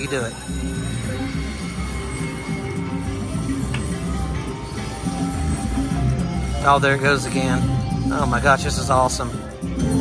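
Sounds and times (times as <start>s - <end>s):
slot machine game music: 0.0s - 10.0s
steady high tone: 0.0s - 10.0s.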